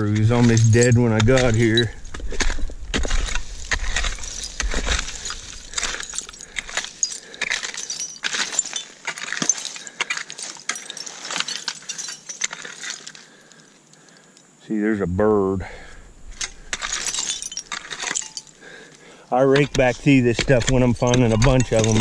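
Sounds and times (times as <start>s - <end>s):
small clinks and rattles: 0.0s - 2.4s, 3.0s - 14.6s, 16.3s - 22.0s
rake scraping through rocky soil: 2.4s - 11.5s.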